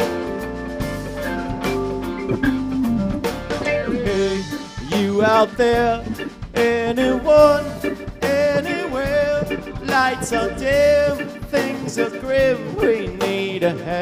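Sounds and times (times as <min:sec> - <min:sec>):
live rock band playing: 0:00.0 - 0:14.0
wavering lead melody: 0:01.0 - 0:12.9.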